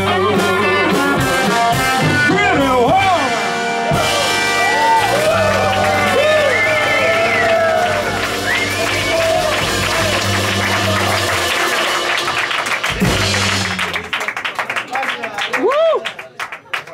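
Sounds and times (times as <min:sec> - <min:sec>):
person singing: 0:00.0 - 0:01.7
live blues band playing: 0:00.0 - 0:14.2
people clapping: 0:04.6 - 0:16.9.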